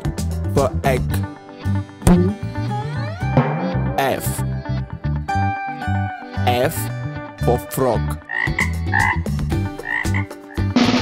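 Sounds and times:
low bass notes: 1.9s - 5.5s
loud music with drums: 3.3s - 4.4s, 8.5s - 11.0s
frog croaking: 8.2s - 10.8s.

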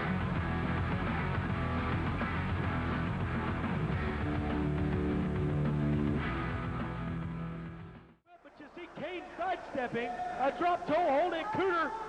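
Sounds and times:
rock music with guitar: 0.0s - 8.2s.

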